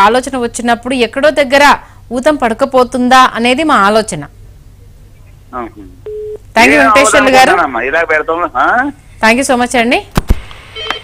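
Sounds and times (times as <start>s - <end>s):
telephone beep: 6.1s - 6.4s, 10.8s - 11.0s
person speaking: 6.6s - 8.8s.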